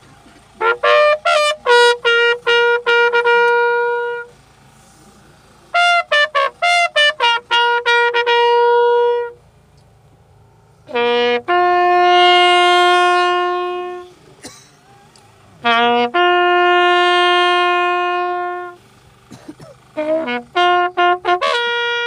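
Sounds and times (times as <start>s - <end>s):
brass horn call phrases: 0.0s - 4.4s, 5.7s - 9.4s, 10.8s - 18.9s, 19.8s - 22.0s.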